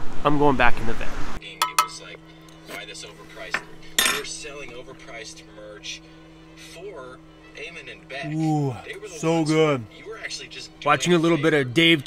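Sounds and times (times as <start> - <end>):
spoon clinking on mug: 1.6 - 2.1
low hum: 1.6 - 11.8.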